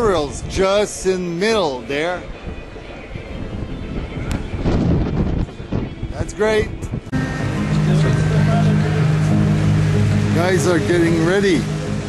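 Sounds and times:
wind on microphone: 0.0s - 7.2s.

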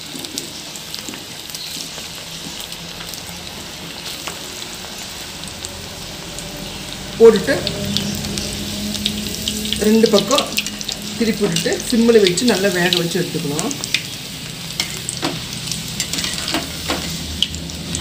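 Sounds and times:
oil sizzling and bubbling: 0.0s - 18.0s
person talking: 7.2s - 8.0s, 9.8s - 13.8s
ladle stirring: 16.0s - 17.2s.

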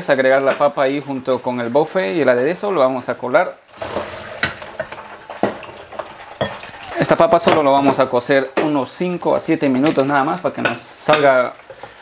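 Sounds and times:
potatoes clattering into colander: 3.8s - 8.8s.

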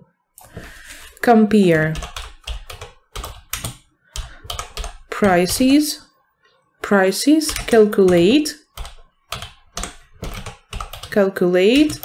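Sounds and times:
computer keyboard typing: 1.7s - 6.0s, 6.8s - 12.0s.

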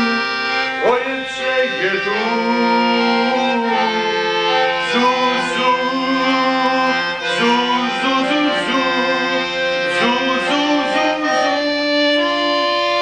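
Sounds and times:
accordion playing slow tune: 0.0s - 13.0s.

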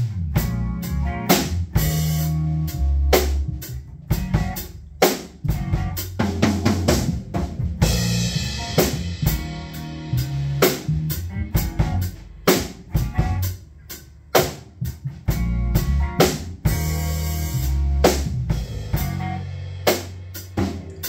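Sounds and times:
drum kit steady beat: 0.0s - 21.0s
electric bass notes: 0.0s - 21.0s
electric guitar: 0.0s - 21.0s.

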